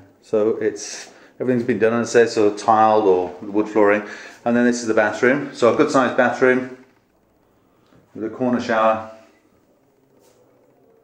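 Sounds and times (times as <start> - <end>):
man speaking: 0.0 - 6.9, 8.1 - 9.3
faint rustle: 9.0 - 11.0.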